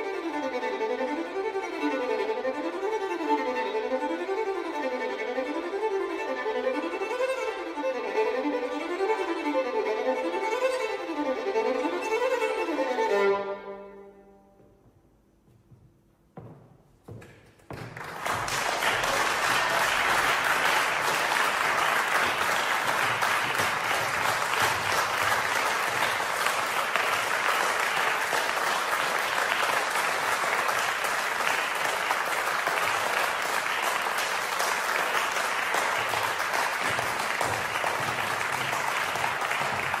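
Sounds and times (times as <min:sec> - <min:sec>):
audience applause: 0:17.7 - 0:40.0.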